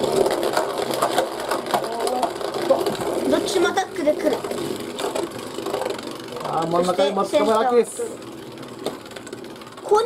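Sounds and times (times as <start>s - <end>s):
spinning tops whirring and grinding: 0.0s - 10.0s.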